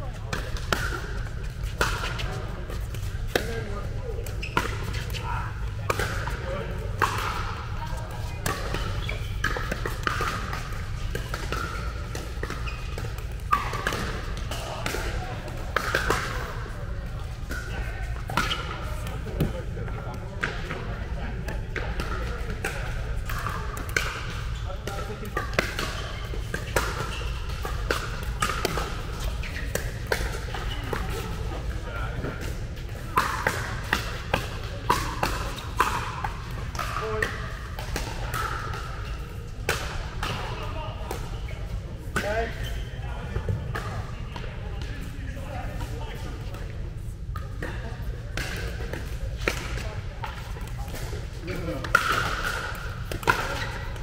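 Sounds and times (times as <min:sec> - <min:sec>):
players chatter: 0:00.0 - 0:54.0
ball bouncing on court: 0:00.2 - 0:41.3, 0:47.3 - 0:54.0
paddles hitting plastic ball: 0:00.3 - 0:16.7, 0:21.4 - 0:40.5, 0:48.4 - 0:54.0.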